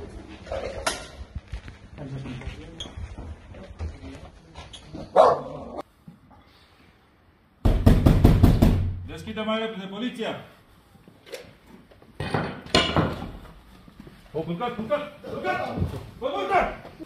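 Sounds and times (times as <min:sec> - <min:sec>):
heavy pounding on a door: 0:07.6 - 0:09.1.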